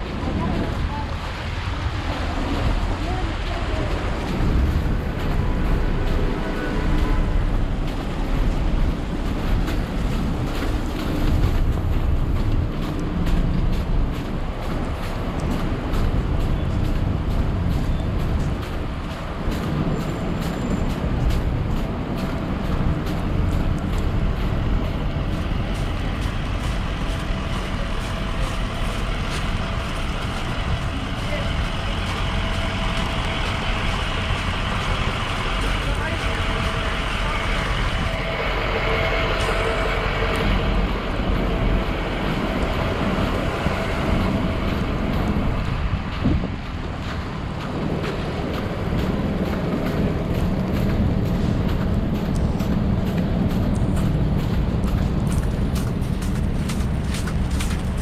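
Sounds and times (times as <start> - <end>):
vehicle engine humming: 0.0 - 58.0
vehicles passing on slushy road: 0.0 - 58.0
wind rumble on microphone: 0.0 - 58.0.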